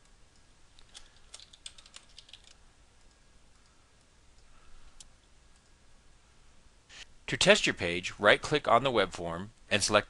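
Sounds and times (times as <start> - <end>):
computer keyboard typing: 0.8 - 2.6.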